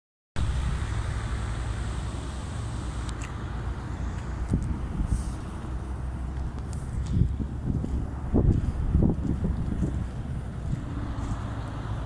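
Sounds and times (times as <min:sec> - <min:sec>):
wind buffeting microphone: 0:04.1 - 0:12.0.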